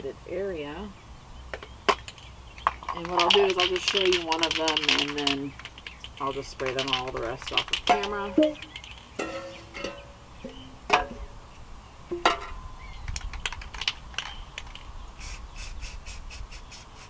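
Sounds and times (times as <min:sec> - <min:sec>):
tin cans knocking on concrete: 0:01.6 - 0:10.0, 0:12.1 - 0:12.6
spray can ball rattling: 0:01.9 - 0:09.1, 0:13.2 - 0:14.9.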